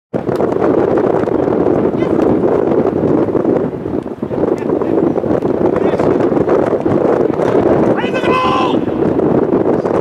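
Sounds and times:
wind on microphone: 0:00.1 - 0:10.0.

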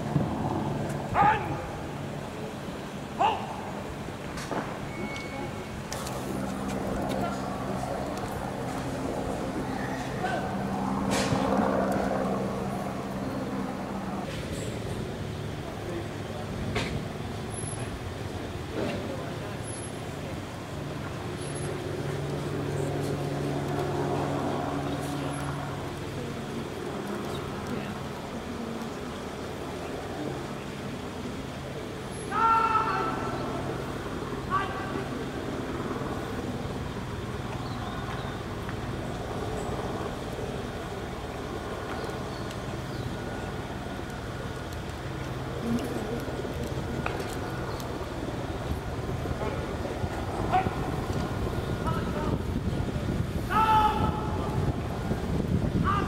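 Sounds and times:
engine hum: 0:00.0 - 0:56.0.

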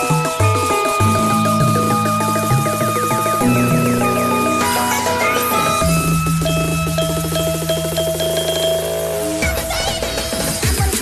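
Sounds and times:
electronic dance music: 0:00.0 - 0:11.0
swooping synth sounds: 0:00.7 - 0:10.6.

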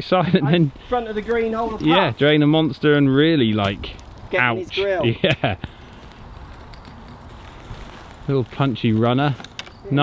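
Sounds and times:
wind rustling on microphone: 0:00.5 - 0:10.0.

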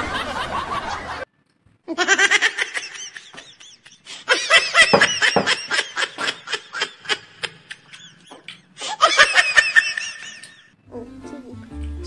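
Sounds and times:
person laughing: 0:01.9 - 0:10.7.

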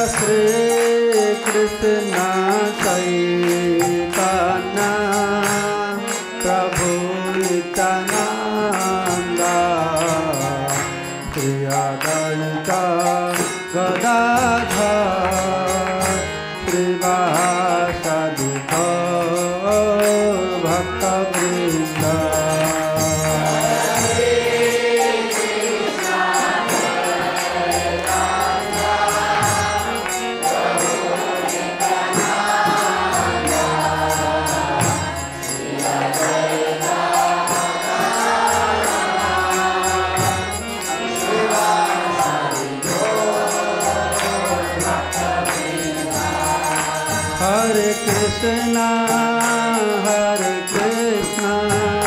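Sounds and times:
man chanting: 0:00.0 - 0:24.4, 0:47.4 - 0:52.0.

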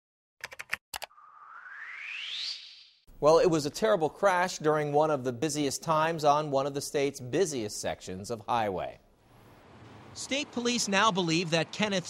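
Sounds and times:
whoosh rising in pitch: 0:01.1 - 0:03.0.

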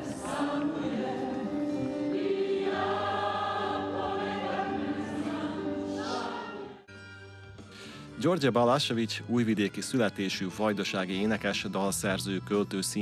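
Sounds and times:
opera choir singing: 0:00.0 - 0:06.9.

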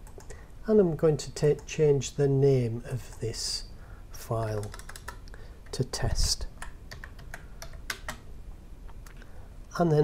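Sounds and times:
keyboard typing: 0:04.4 - 0:05.8, 0:06.5 - 0:08.3.

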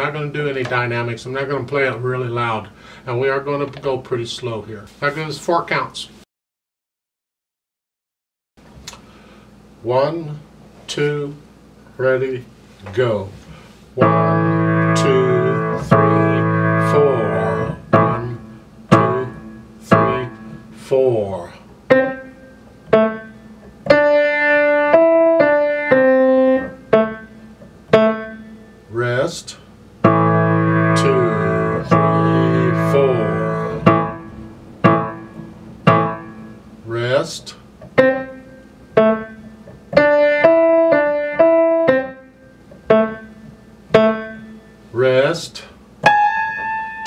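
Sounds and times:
piano played slowly: 0:14.0 - 0:21.0, 0:21.8 - 0:28.9, 0:30.0 - 0:36.9, 0:37.9 - 0:44.9, 0:46.0 - 0:47.0.

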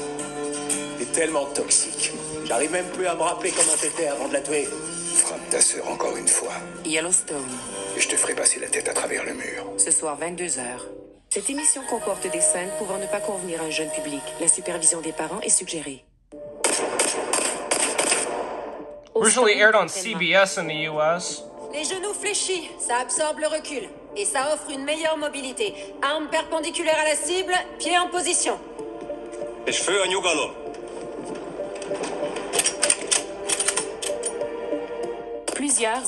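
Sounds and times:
background music with sustained notes: 0:00.0 - 0:36.0
pistol shots: 0:16.6 - 0:18.7.

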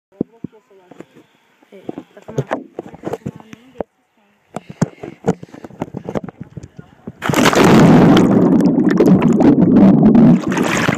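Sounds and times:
water churning against microphone: 0:05.4 - 0:10.9.

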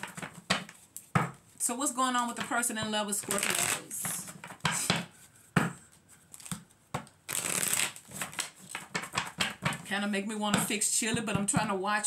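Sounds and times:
cards being shuffled: 0:02.3 - 0:09.8.

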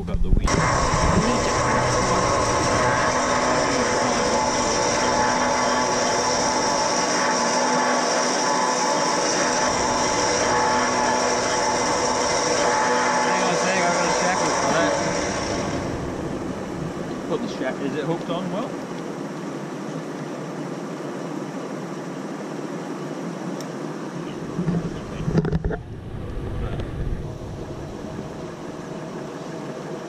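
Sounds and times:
electric winch whining: 0:00.5 - 0:19.2, 0:24.4 - 0:30.0.

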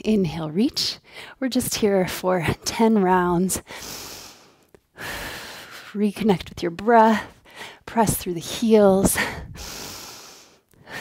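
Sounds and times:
woman breathing hard: 0:03.7 - 0:05.8, 0:09.2 - 0:11.0.

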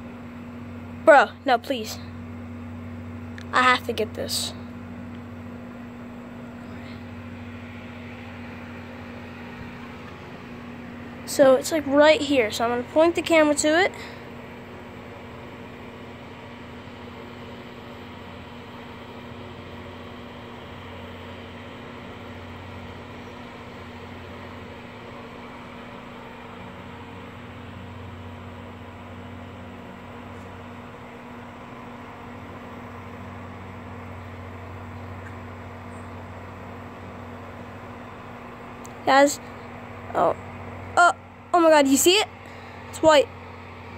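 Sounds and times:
low mechanical hum: 0:00.0 - 0:43.9.

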